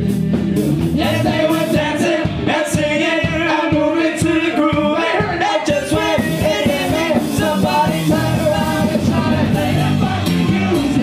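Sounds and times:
live band playing funk music: 0.0 - 11.0.

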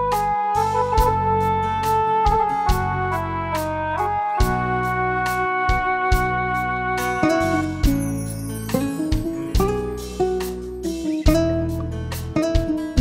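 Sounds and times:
pop ballad melody: 0.0 - 13.0
sustained bass: 0.0 - 13.0
steady drum beat: 2.3 - 3.7, 4.4 - 13.0.

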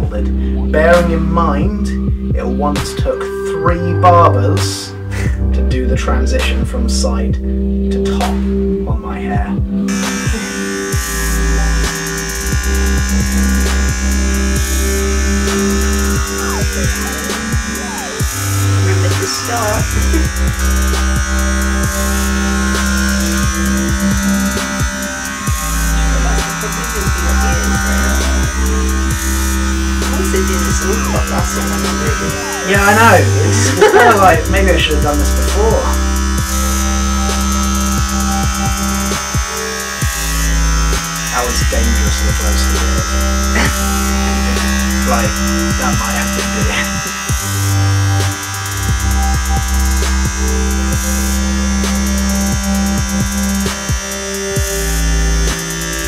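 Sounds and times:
electronic music with bass beat: 0.0 - 56.0
electric hair clippers buzzing: 9.8 - 56.0.

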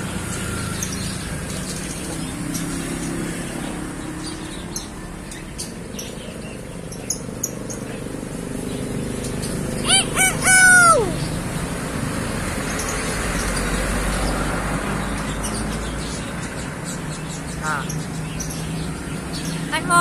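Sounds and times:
myna bird call: 9.6 - 11.5, 17.4 - 18.4, 19.4 - 20.0.

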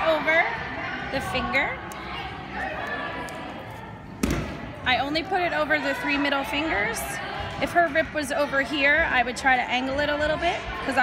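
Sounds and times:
gym hall background noise: 0.0 - 11.0
loud dull thud: 4.2 - 4.6.

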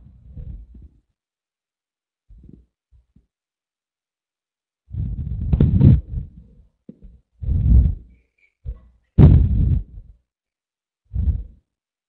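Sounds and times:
low muffled rumbling bursts: 7.4 - 8.1, 9.2 - 10.2.

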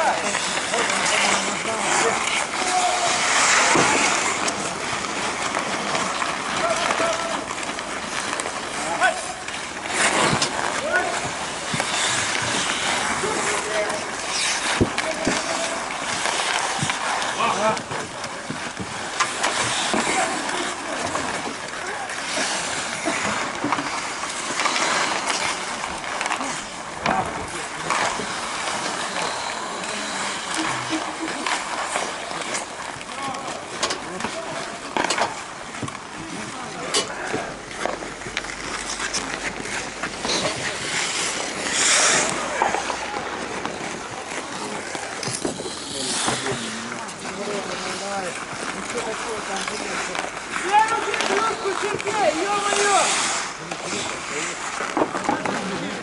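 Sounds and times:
players calling out: 0.0 - 35.0
hockey sticks and puck clacking: 0.0 - 56.0
skates scraping on ice: 0.0 - 56.0.

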